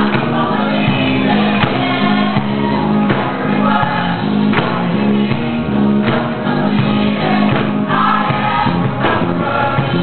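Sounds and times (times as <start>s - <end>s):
choir singing in harmony: 0.0s - 10.0s.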